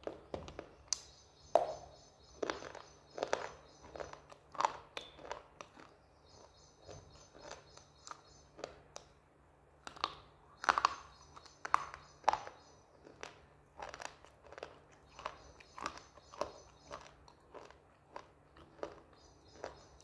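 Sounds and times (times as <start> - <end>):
crunching and chewing slate: 0.0 - 20.0.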